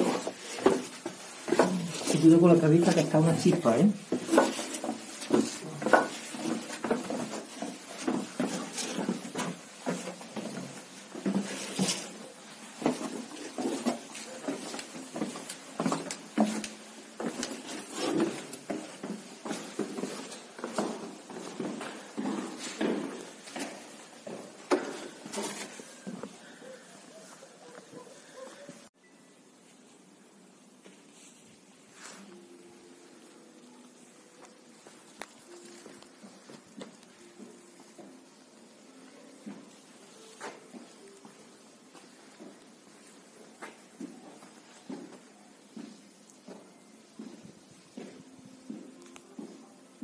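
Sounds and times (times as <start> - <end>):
footsteps on stone stairs: 0.0 - 26.9, 34.4 - 50.0.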